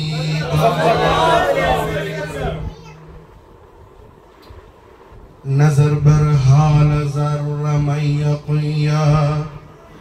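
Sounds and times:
man chanting into a microphone: 0.0s - 1.1s, 5.4s - 10.0s.

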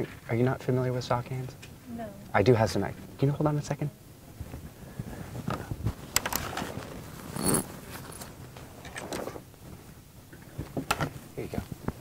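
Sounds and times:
rustling and handling noises: 4.3s - 12.0s.

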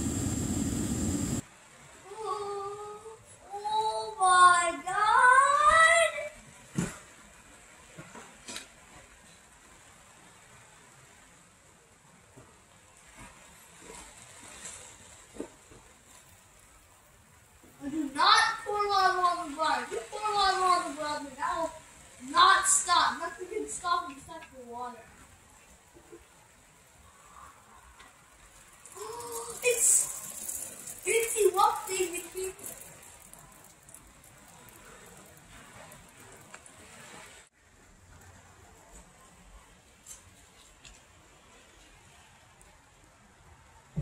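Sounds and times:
person making wordless gliding sounds: 28.9s - 33.0s.

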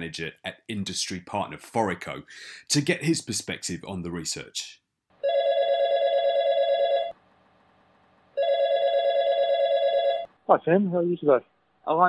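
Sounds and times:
telephone ringing with warbling trill: 5.2s - 7.2s, 8.4s - 10.3s.

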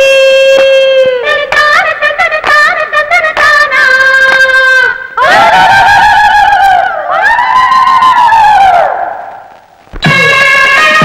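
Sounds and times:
women ululating: 5.2s - 9.2s.

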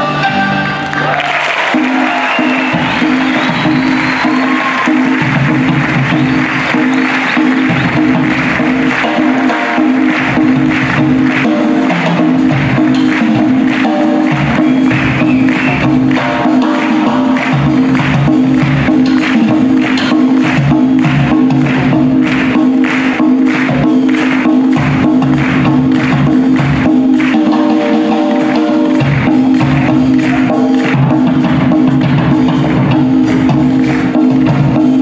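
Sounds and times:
marimba and percussion piece: 0.0s - 35.0s
steady percussion rhythm: 0.0s - 35.0s
audience applause: 0.5s - 35.0s.

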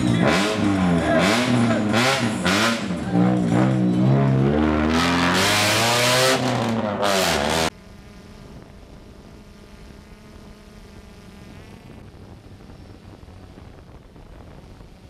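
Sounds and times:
rally car engine revving: 0.0s - 7.7s.

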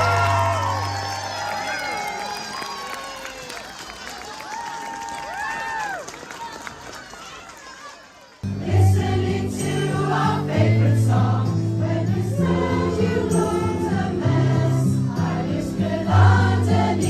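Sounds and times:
amplified accompaniment with bass: 8.5s - 17.0s
choir singing: 8.5s - 17.0s.

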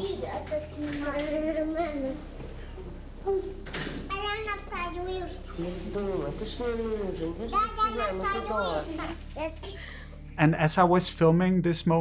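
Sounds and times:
woman talking: 5.5s - 9.2s.

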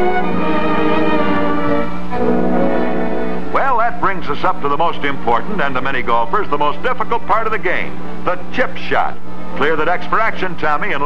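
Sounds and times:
orchestral string music: 0.0s - 4.8s.

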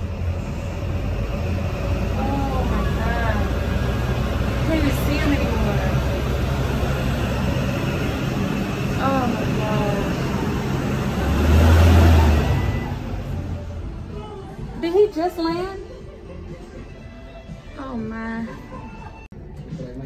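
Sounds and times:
low rumble: 0.0s - 14.8s
distant voices talking: 0.1s - 16.5s.

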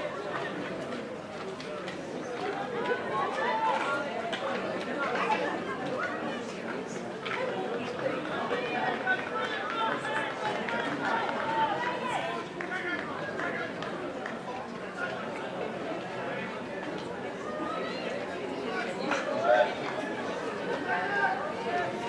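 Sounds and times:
spectators chattering: 0.0s - 22.0s.

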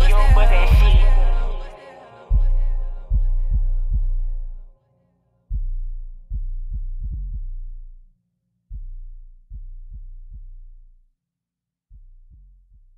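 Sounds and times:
deep bass notes: 0.0s - 4.7s, 5.5s - 8.1s.

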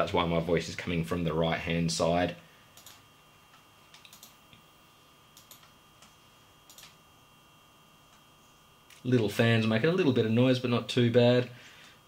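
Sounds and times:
cooling fan whine: 0.0s - 12.0s
soft clicks: 2.8s - 4.6s, 5.3s - 6.1s.

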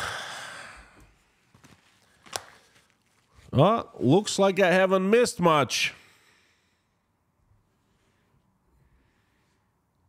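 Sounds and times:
man sighing: 0.0s - 1.1s
headphones clicking: 1.5s - 3.2s.

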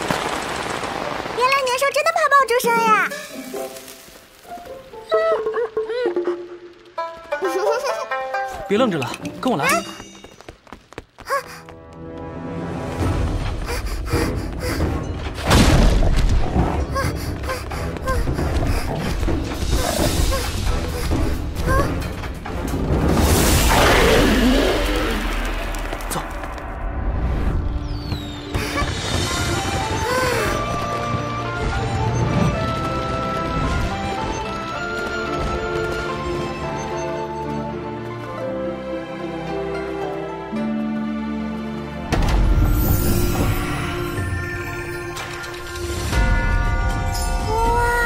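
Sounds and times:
light instrumental music: 3.2s - 10.6s, 28.6s - 48.0s.

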